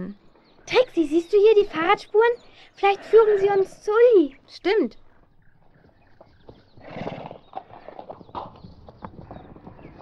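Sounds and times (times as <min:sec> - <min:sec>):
horse hooves clip-clopping: 0:05.1 - 0:10.0.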